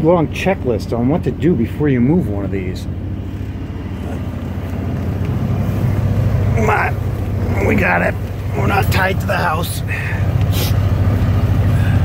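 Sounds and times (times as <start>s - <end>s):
motorhome engine droning: 0.0s - 12.0s.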